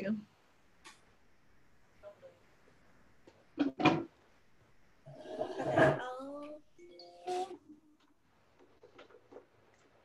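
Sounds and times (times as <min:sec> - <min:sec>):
rustling and handling noise: 0:07.3 - 0:10.0.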